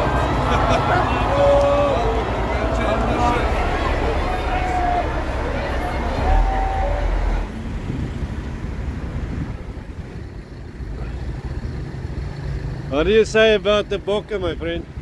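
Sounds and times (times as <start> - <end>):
heavy low rumble: 0.0 - 12.7
street crowd noise: 0.0 - 15.0.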